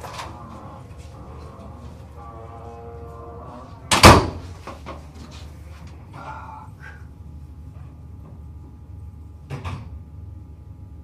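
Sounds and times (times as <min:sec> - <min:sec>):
door banging shut: 0:03.9 - 0:04.6.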